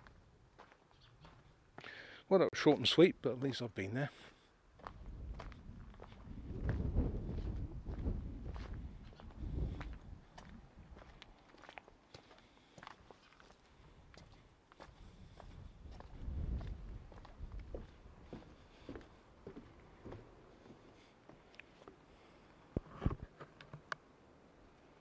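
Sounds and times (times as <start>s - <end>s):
footsteps on gravel path: 0.0s - 2.0s, 2.7s - 22.0s.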